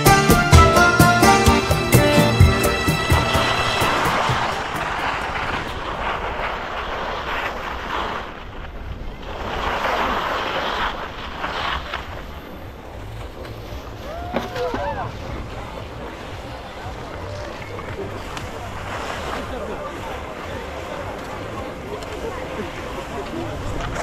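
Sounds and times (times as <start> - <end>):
skis scraping over snow: 3.1 - 24.0.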